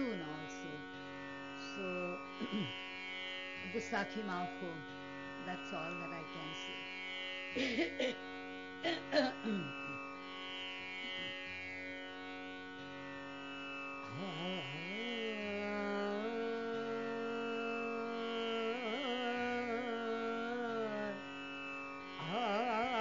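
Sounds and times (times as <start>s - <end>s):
tanpura drone: 0.0s - 23.0s
person coughing: 7.6s - 8.2s, 8.8s - 9.8s.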